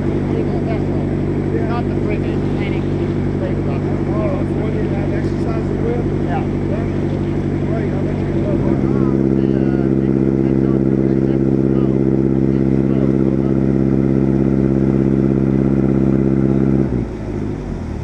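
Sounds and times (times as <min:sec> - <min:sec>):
submarine engine running: 0:00.0 - 0:18.0.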